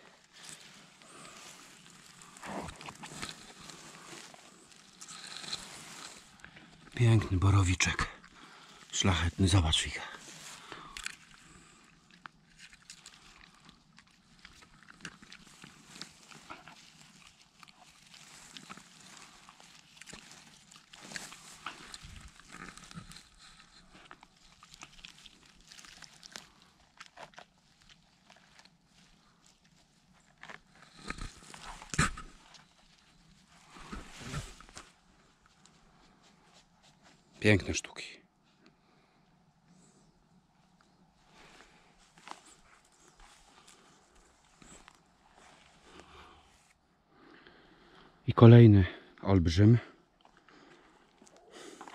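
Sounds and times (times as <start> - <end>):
rustling of grass and forest litter: 0.0 - 37.7, 38.4 - 48.0, 50.0 - 51.9.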